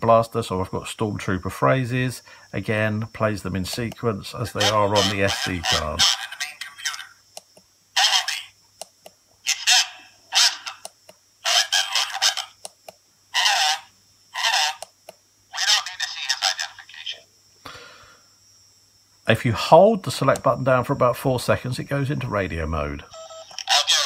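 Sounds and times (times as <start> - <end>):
recorded voice phrases through tinny speaker: 0.0 - 7.2, 8.0 - 8.6, 9.5 - 12.6, 13.4 - 14.8, 15.5 - 17.2, 23.6 - 24.0.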